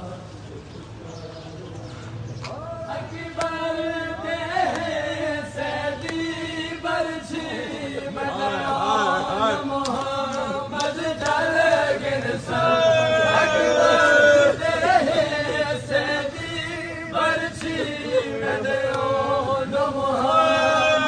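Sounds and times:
men chanting a lament: 0:00.0 - 0:21.0.

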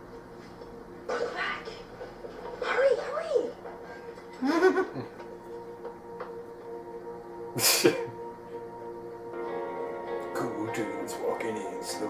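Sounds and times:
soft music with held tones: 0:00.0 - 0:12.0.

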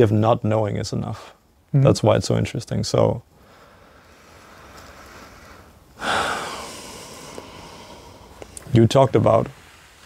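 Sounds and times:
person breathing in: 0:03.4 - 0:08.6
person exhaling: 0:03.4 - 0:08.6.

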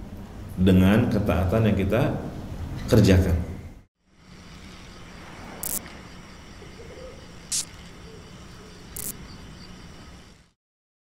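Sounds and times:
even hiss: 0:04.1 - 0:10.6
short high hiss: 0:07.5 - 0:07.8.

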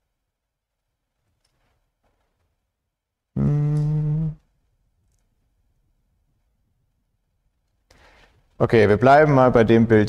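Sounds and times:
man humming hesitantly: 0:03.4 - 0:04.5.

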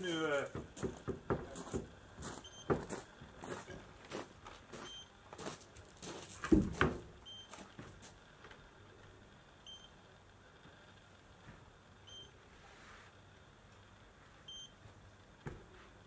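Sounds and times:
scuffing footsteps and knocks: 0:00.5 - 0:08.2.

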